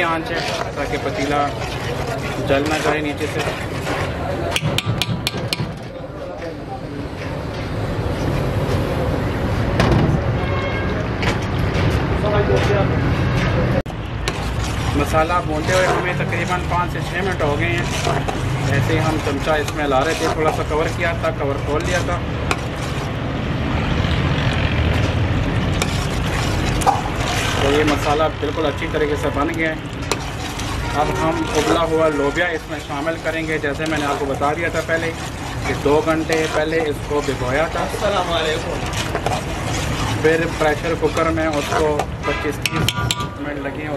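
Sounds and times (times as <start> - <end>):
thick paste being stirred: 0.0 - 8.5, 13.3 - 43.9
metal spoon knocking on pot: 4.5 - 5.8, 42.0 - 43.4
ladle clinking against pot: 38.8 - 43.5.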